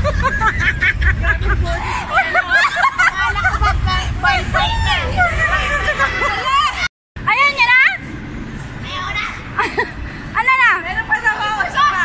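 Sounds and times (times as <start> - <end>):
low rumble: 0.0 - 11.8
crowd shouting and talking: 1.5 - 12.0.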